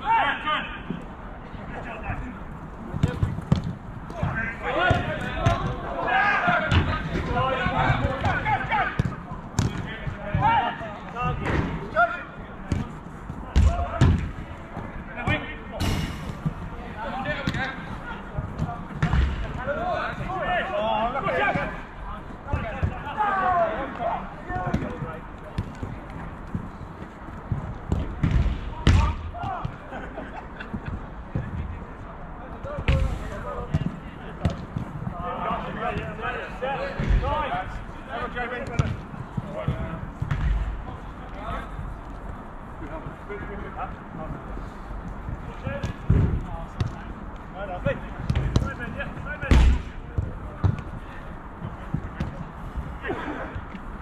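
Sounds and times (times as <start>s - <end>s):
players shouting: 0.0s - 1.0s, 4.0s - 12.8s, 13.4s - 25.5s, 28.5s - 30.3s
ball being kicked: 18.6s - 19.6s, 27.5s - 29.8s, 38.6s - 39.0s, 39.6s - 40.8s, 49.5s - 50.9s.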